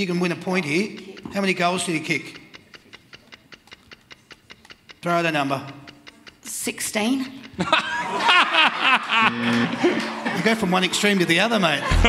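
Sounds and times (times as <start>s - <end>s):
fast clock ticking: 0.0s - 9.4s, 10.2s - 12.0s.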